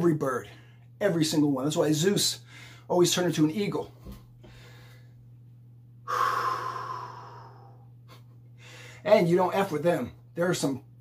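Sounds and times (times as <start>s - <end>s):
low hum: 0.0s - 11.0s
man breathing out forcefully: 6.1s - 7.8s.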